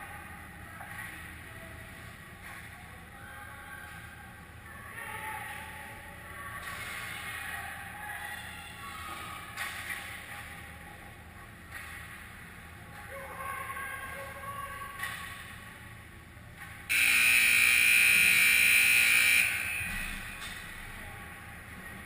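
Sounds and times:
faint rink noise: 16.6s - 22.0s
scoreboard horn: 16.9s - 20.1s.

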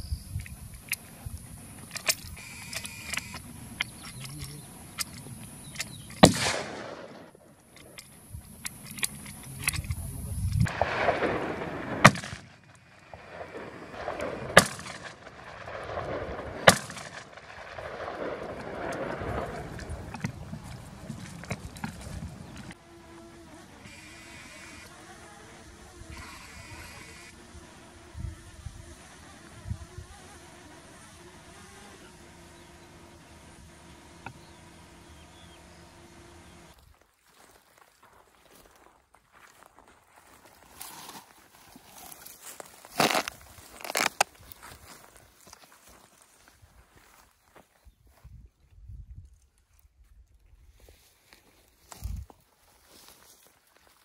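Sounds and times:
faint steady hum: 0.0s - 36.9s
rifle shots with rolling echo: 5.8s - 7.5s, 10.6s - 22.8s.

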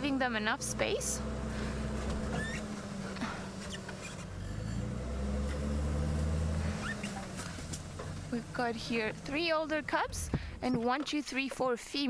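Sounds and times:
vehicle engine at low speed: 0.0s - 11.1s.

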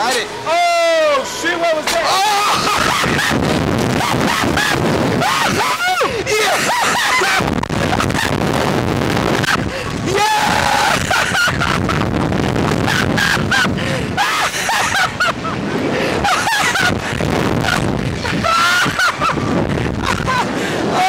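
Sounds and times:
people laughing and shouting: 0.0s - 8.4s, 9.3s - 21.0s
wind rushing over microphone: 1.5s - 21.0s.

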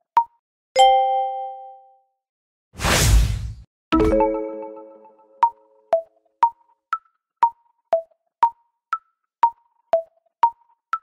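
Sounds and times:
mallet chime note: 4.0s - 5.8s.

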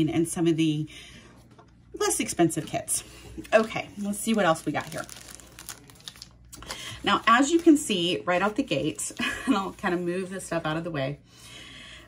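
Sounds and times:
plastic packaging crinkling: 3.5s - 8.1s.

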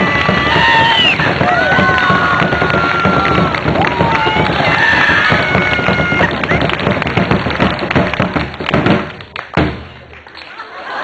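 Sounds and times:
drums beaten fast with sticks: 0.0s - 10.0s
crowd noise: 0.0s - 11.0s.

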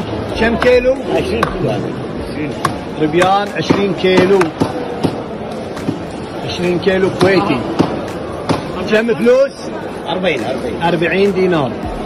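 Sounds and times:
voices in busy market: 0.0s - 12.0s.

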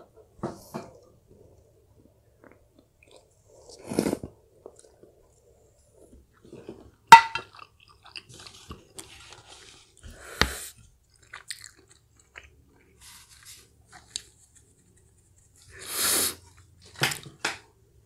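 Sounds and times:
person chewing: 2.3s - 5.2s, 6.3s - 14.4s
slurp: 3.2s - 4.9s.

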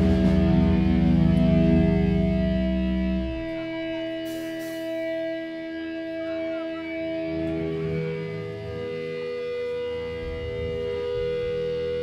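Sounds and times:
amplified electric guitars droning chord: 0.0s - 12.0s.

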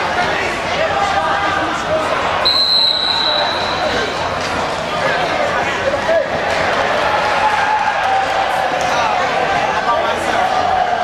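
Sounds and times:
voices echoing in hall: 0.0s - 11.0s
whistle blast: 2.4s - 4.0s.

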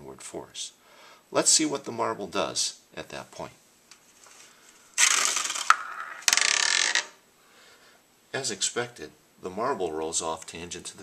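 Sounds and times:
marble rolling in metal pie plate: 5.0s - 7.2s.

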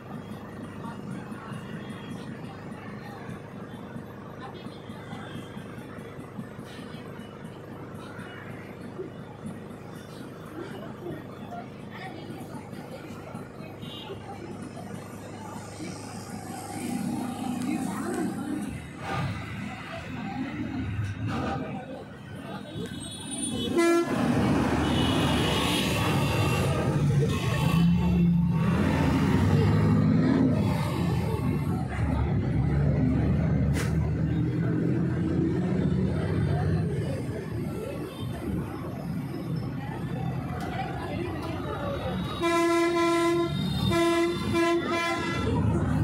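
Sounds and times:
steady background noise: 0.0s - 46.0s
horn blasts and toots: 22.9s - 30.6s, 42.2s - 45.9s.

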